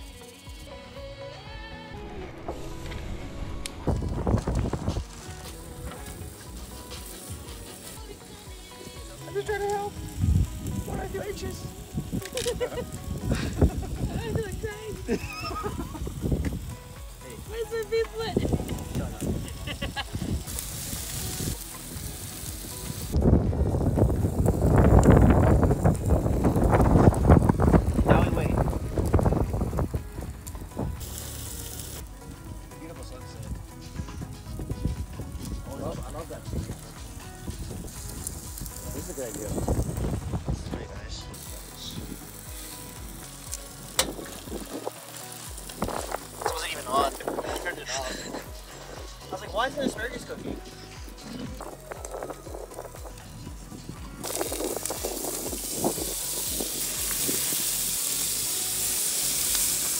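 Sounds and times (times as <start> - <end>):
food sizzling: 0.0 - 59.9.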